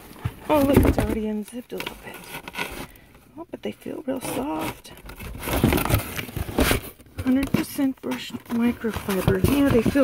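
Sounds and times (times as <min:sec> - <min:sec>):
soft handling bumps: 0:05.6 - 0:10.0.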